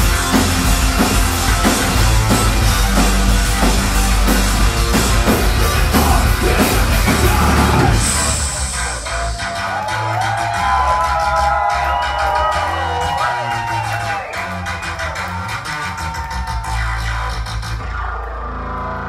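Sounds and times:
drum beat: 0.0s - 11.7s
rock band playing live: 0.0s - 17.5s
bass notes: 0.0s - 19.0s.

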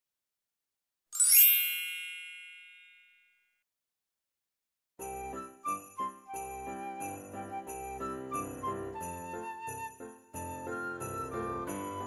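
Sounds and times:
bright metallic chime ringing: 1.2s - 3.4s.

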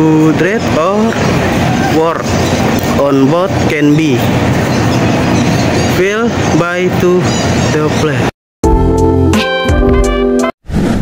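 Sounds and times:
loud vehicle noise: 0.0s - 8.3s.

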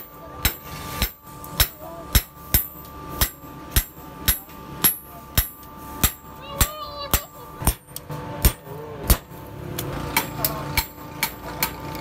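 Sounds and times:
hammer striking steel on anvil: 0.0s - 9.4s, 10.2s - 11.8s.

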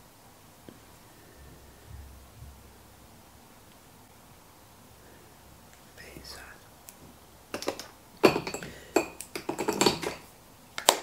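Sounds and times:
makeup cases clicking and clinking: 7.5s - 11.0s.

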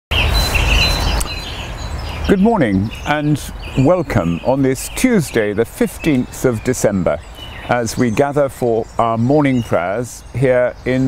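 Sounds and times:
birds chirping: 0.1s - 11.0s
steady outdoor hiss: 0.1s - 11.0s.

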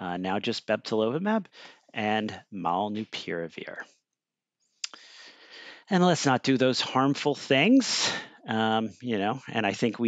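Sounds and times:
breath on headset microphone: 1.5s - 1.9s, 4.8s - 5.9s.

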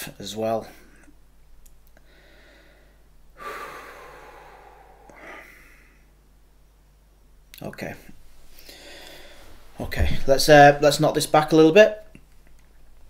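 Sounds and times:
man breathing out heavily: 2.0s - 6.1s, 8.6s - 9.6s.

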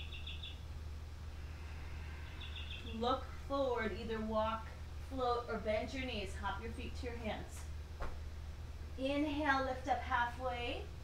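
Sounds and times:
small bird high chirps: 0.0s - 0.6s, 2.2s - 3.0s
steady low hum: 0.0s - 11.0s.

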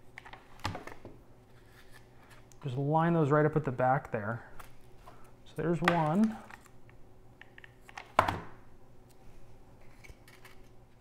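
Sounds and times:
handling small parts: 9.8s - 11.0s.

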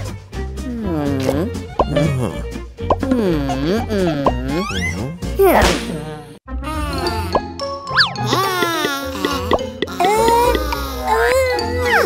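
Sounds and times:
playful cartoon music: 0.0s - 12.0s.

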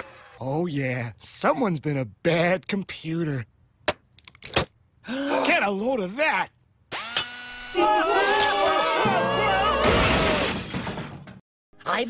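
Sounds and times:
loud shattering crash: 9.8s - 11.4s.

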